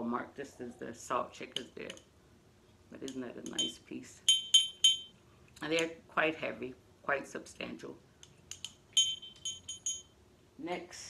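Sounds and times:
glass hand bell ringing: 4.3s - 5.1s, 9.0s - 10.2s.

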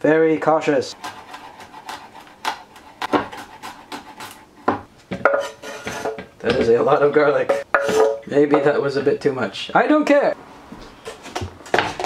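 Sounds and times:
knife chopping on wooden board: 1.0s - 6.8s.

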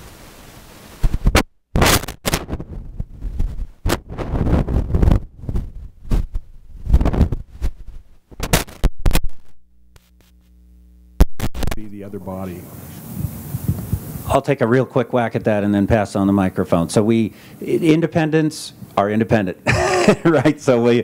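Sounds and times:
steady hiss: 0.0s - 1.4s, 10.0s - 21.0s
distorted microphone crackling: 0.0s - 21.0s.

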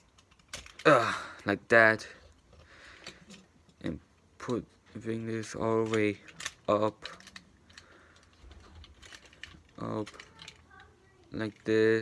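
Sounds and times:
plastic parts clicking and tapping: 0.0s - 1.5s, 2.2s - 3.8s, 4.4s - 12.0s.

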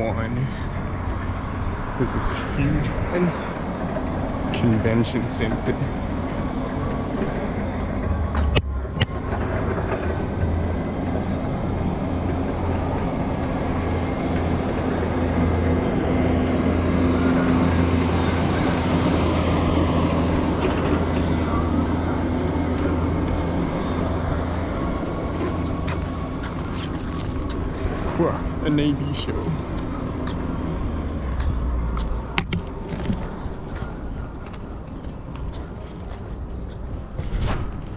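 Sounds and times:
engine running steadily: 0.0s - 37.8s
noisy rush: 0.0s - 37.9s.

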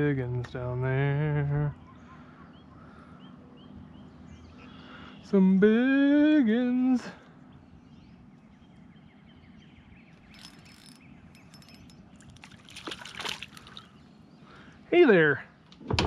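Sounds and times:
quiet lake background: 0.0s - 16.0s
fish splashing water: 12.2s - 13.9s.

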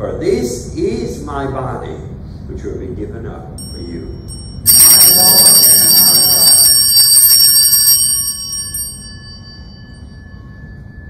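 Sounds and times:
altar bells jangling: 3.6s - 11.0s.

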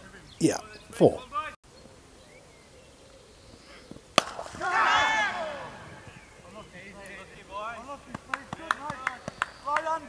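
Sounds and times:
cricket bat hitting ball: 4.2s - 4.8s.

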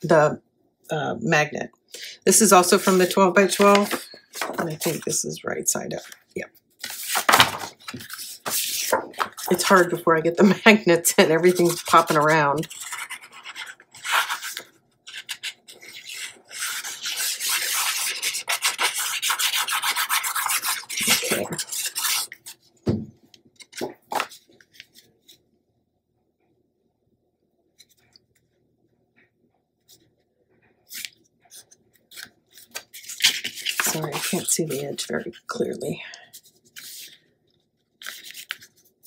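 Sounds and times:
paper handling: 2.7s - 5.2s, 5.9s - 10.5s, 11.3s - 22.7s, 23.5s - 25.4s, 30.9s - 37.2s, 37.8s - 39.0s
hands rubbing paper on chipboard: 11.3s - 22.6s, 33.0s - 35.1s.

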